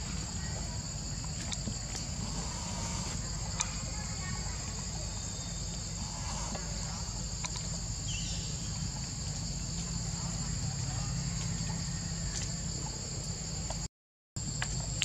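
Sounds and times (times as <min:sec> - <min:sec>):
forest insects droning: 0:00.0 - 0:15.0.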